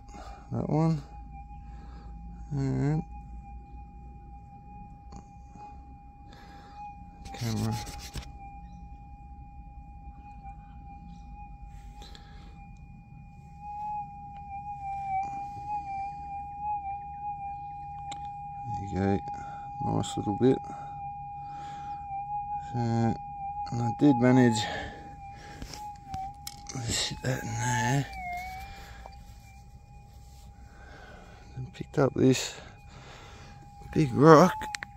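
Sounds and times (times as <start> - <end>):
metal detector threshold tone: 4.8 - 34.9.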